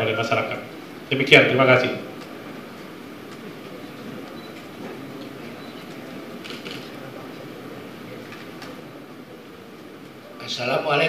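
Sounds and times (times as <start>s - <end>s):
low room rumble and hiss: 0.0s - 11.0s.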